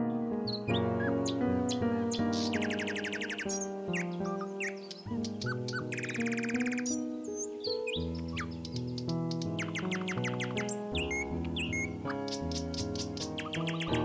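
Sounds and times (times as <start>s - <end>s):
instrumental music of held notes: 0.0s - 14.0s
bird-like chirping trills: 0.4s - 14.0s.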